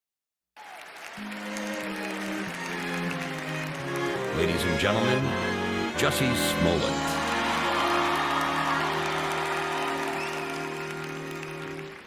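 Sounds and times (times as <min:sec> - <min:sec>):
orchestra sustained string chords: 0:01.2 - 0:12.0.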